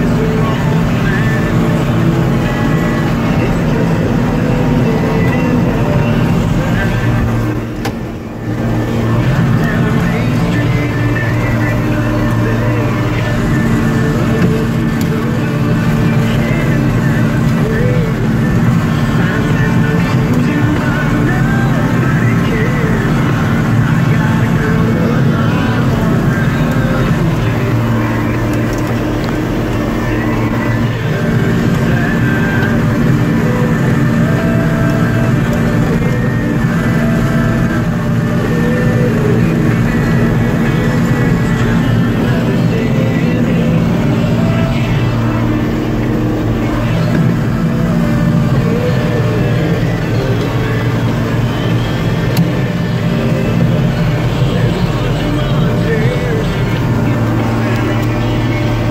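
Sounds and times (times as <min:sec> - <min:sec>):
manure spreader beaters: 0:00.0 - 0:58.9
tractor engine running: 0:00.0 - 0:58.9.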